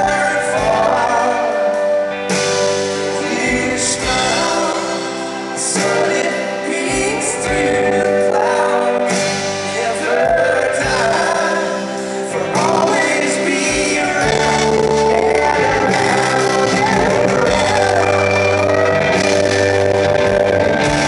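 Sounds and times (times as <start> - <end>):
man singing: 0.0 - 21.0
rock band playing: 0.0 - 21.0.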